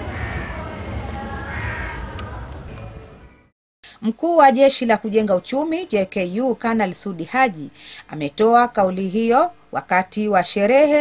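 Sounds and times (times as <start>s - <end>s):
crows cawing: 0.0s - 0.7s, 1.4s - 2.1s
low outdoor rumble: 0.0s - 3.2s.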